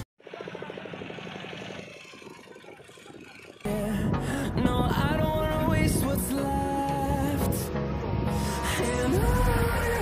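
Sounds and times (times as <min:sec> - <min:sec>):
boat engine running: 0:00.0 - 0:06.0.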